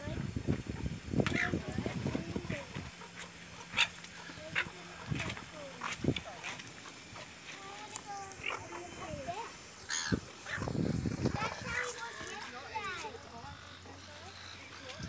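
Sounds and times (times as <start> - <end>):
animal calls: 1.3 - 7.4, 8.3 - 10.8.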